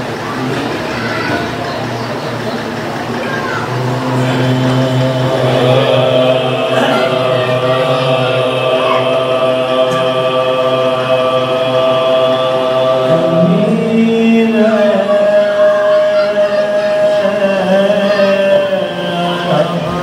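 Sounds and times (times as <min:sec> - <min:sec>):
men chanting into a microphone: 0:03.5 - 0:20.0.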